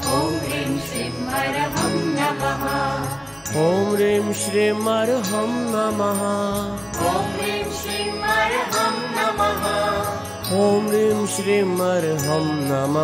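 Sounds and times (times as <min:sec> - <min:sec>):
light rhythmic percussion: 0:00.0 - 0:13.0.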